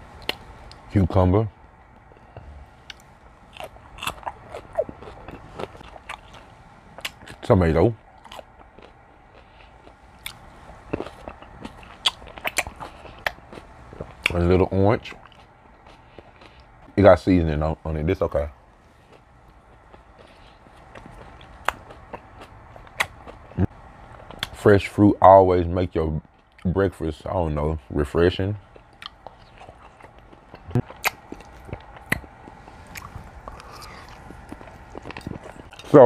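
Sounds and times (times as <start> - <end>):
person chewing: 0.2 - 0.9, 2.0 - 7.4, 8.1 - 14.4, 15.0 - 17.0, 19.0 - 24.6, 28.7 - 36.0
person crunching cucumber: 2.8 - 7.4, 8.1 - 14.4, 19.1 - 24.6, 28.7 - 36.0
sharp wet mouth clicks: 30.8 - 32.2.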